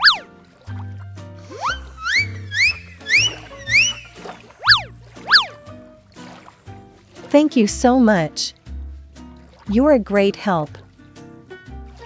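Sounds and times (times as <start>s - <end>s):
children's music with bass line: 0.0s - 12.0s
rising swoop sound effects: 1.5s - 5.6s.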